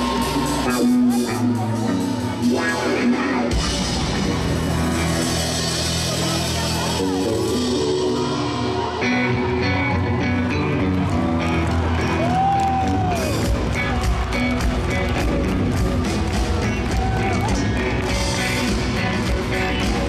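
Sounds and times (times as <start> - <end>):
live rock band through pa: 0.0 - 20.0.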